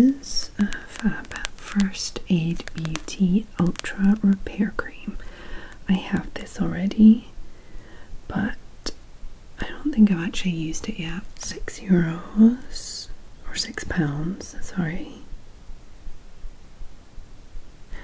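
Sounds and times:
woman speaking softly: 0.0s - 5.2s, 5.8s - 7.4s, 8.3s - 9.0s, 9.6s - 15.3s
sharp clicks: 0.0s - 6.6s.

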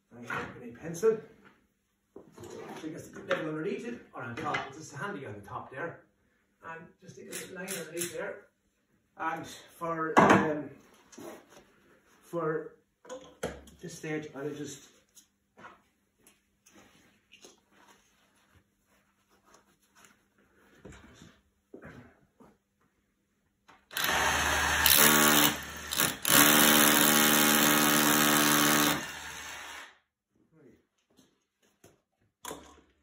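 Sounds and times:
hammer drill drilling into concrete: 23.9s - 30.0s.

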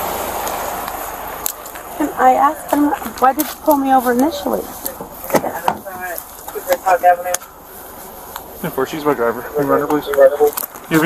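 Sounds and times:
person speaking: 1.9s - 11.0s.

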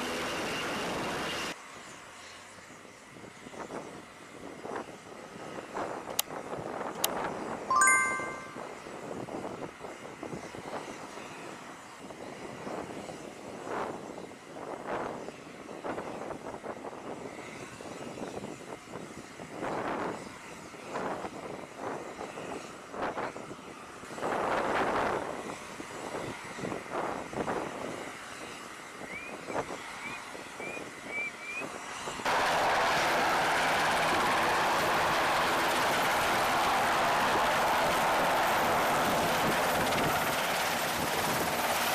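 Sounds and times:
helicopter rotors hovering: 0.0s - 1.6s, 32.3s - 41.9s
wind: 0.0s - 41.9s
short high chirps: 7.7s - 8.7s
machinery noise: 32.3s - 41.9s.

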